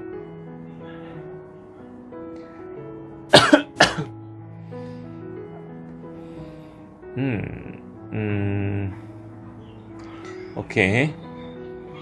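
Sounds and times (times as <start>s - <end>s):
background music with held notes: 0.0s - 12.0s
person coughing: 3.3s - 4.1s.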